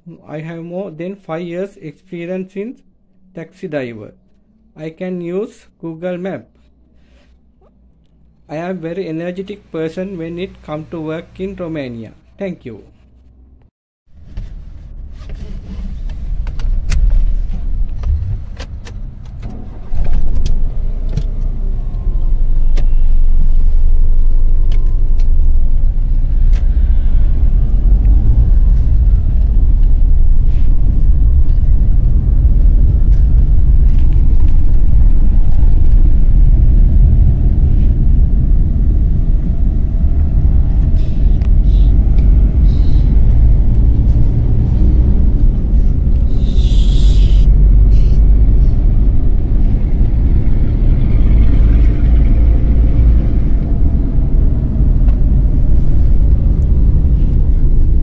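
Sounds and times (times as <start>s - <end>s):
car engine and road noise: 0.0s - 58.0s
car engine starting: 14.2s - 58.0s.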